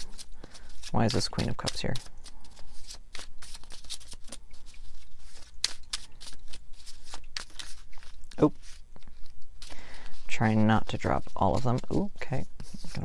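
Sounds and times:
cards being shuffled by hand: 0.0 - 13.0.

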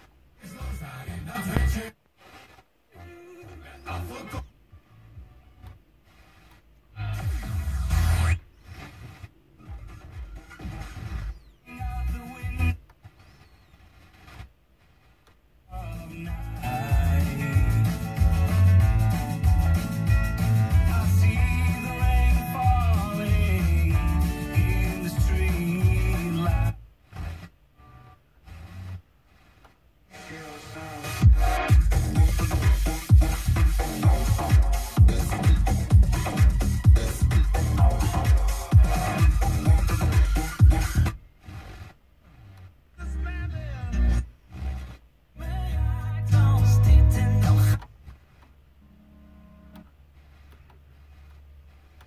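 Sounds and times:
radio tuning across stations: 0.0 - 52.0
snatches of broadcast music: 0.0 - 52.0.

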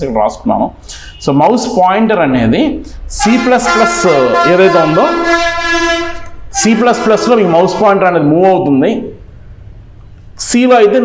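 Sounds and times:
man speaking: 0.0 - 5.5, 6.5 - 9.2, 10.4 - 11.0
man holding long vowel: 3.1 - 8.1.

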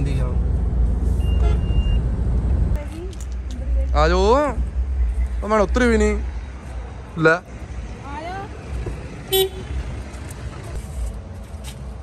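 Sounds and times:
vehicle horn beep: 1.2 - 2.0, 9.3 - 9.8.

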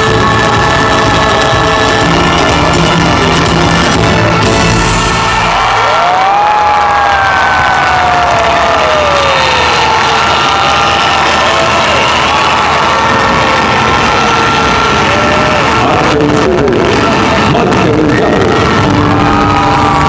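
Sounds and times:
audience cheering and screaming: 0.0 - 20.0.

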